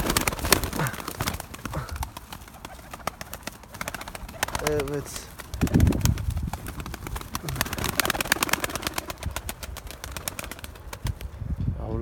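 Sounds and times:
pigeons pecking on soil: 0.0s - 11.2s
wings flapping: 0.0s - 11.4s.

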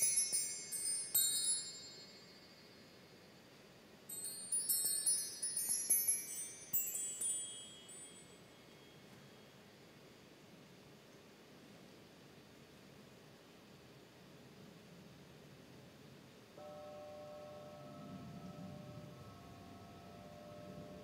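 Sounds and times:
high chimes tinkling: 0.0s - 9.5s.

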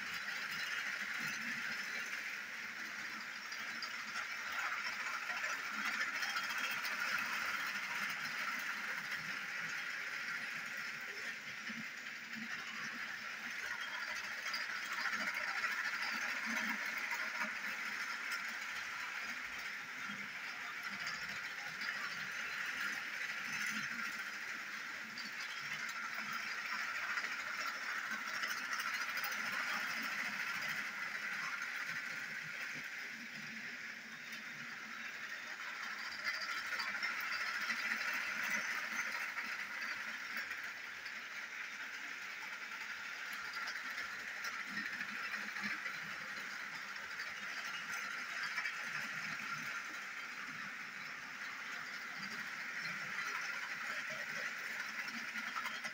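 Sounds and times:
toy train motors whirring: 0.0s - 55.9s.

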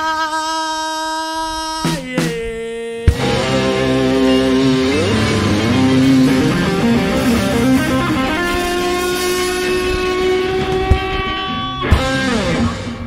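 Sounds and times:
rock band holding a chord: 3.1s - 13.0s
sharp drum hit: 5.3s - 13.0s.

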